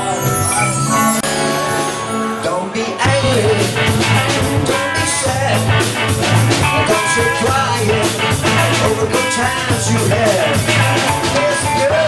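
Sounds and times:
electric guitar: 0:00.0 - 0:12.0
keyboard: 0:00.0 - 0:12.0
drum kit beat: 0:03.1 - 0:12.0.

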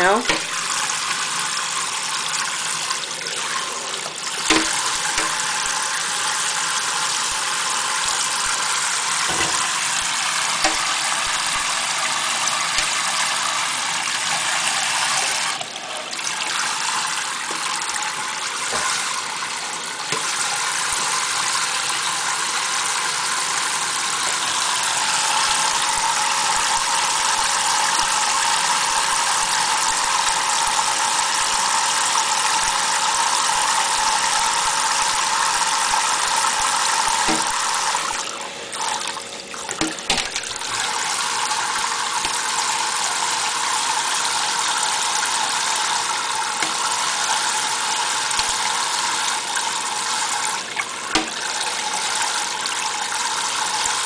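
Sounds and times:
faucet spray splashing into sink: 0:00.0 - 0:01.2, 0:04.1 - 0:06.0, 0:08.0 - 0:15.6, 0:35.9 - 0:38.2, 0:50.2 - 0:51.6
sharp knocks: 0:04.5 - 0:05.4, 0:09.3 - 0:09.7, 0:37.3 - 0:37.5.

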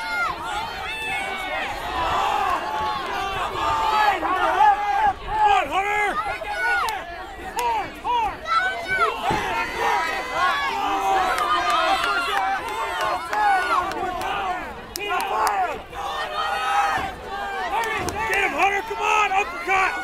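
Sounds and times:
crowd yelling and cheering: 0:00.0 - 0:20.0.

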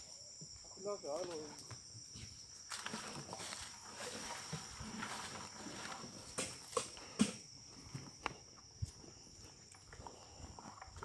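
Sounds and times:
crickets chirring: 0:00.0 - 0:11.0
rustling and scraping: 0:02.2 - 0:08.2.

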